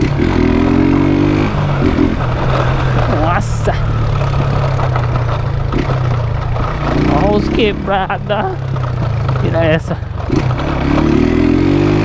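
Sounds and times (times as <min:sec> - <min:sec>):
motorcycle engine running: 0:00.0 - 0:12.0
tyres rumbling over cobblestones: 0:00.0 - 0:12.0.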